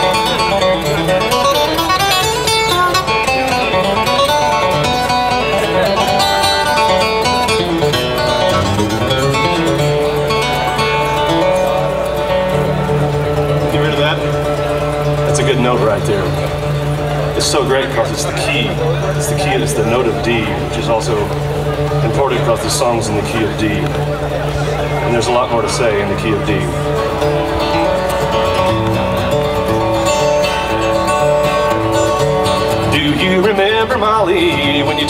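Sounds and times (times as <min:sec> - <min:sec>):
acoustic guitar picking: 0:00.0 - 0:35.0.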